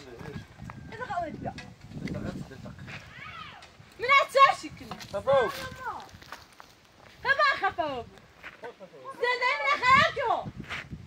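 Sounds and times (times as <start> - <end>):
people talking: 9.1 - 10.5.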